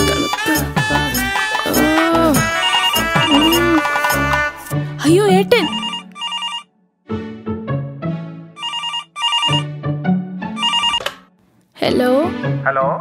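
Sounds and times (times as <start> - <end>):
background music: 0.0 - 13.0
telephone ringer trilling: 5.7 - 6.7, 8.6 - 9.7, 10.6 - 11.1.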